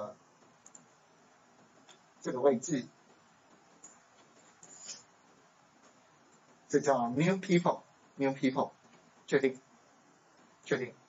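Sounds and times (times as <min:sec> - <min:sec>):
faint computer mouse clicks: 0:00.5 - 0:00.9.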